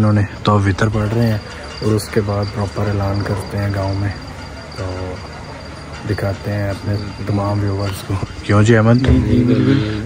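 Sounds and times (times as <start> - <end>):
crickets chirping: 0.0 - 10.0
man speaking: 4.8 - 5.2, 6.1 - 10.0.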